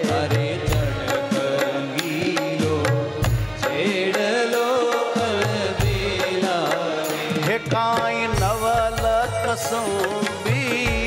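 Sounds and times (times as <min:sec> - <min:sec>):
light percussion: 0:00.0 - 0:11.0
man singing devotional song: 0:00.0 - 0:11.0.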